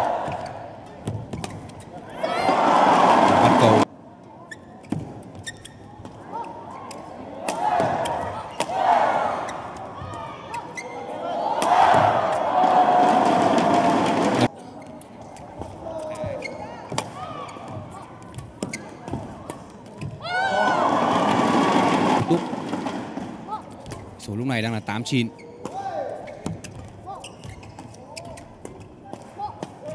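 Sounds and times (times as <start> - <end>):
people shouting and cheering: 0.0 - 0.6, 2.1 - 3.9, 7.4 - 14.5, 20.2 - 22.6.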